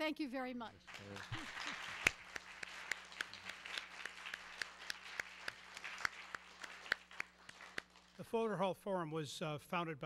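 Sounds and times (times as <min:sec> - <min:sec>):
close hands clapping: 0:00.8 - 0:08.2
audience applauding: 0:00.9 - 0:08.2
sharp loud clap: 0:00.9 - 0:08.2.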